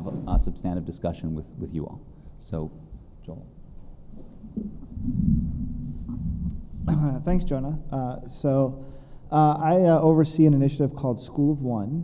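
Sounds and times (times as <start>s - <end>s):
microphone handling rumble: 4.4s - 7.7s.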